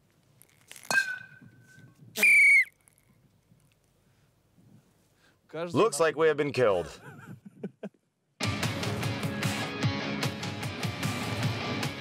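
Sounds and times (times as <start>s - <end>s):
whistle blast: 2.2s - 2.9s.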